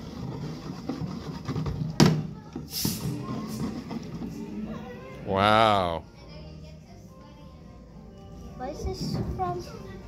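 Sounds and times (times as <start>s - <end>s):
background music: 0.0s - 10.0s
short hiss: 2.7s - 3.1s.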